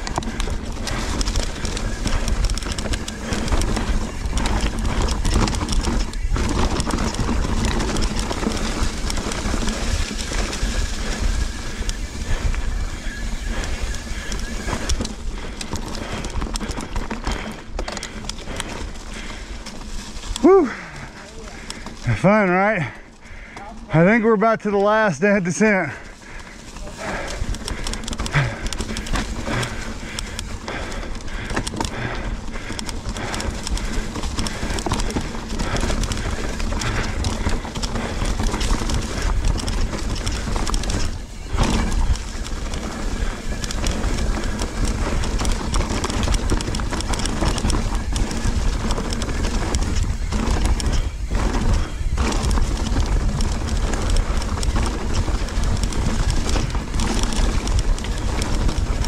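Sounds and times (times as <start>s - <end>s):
bike clattering and rattling: 0.0s - 59.0s
bike tyres rolling over dirt: 0.0s - 59.0s.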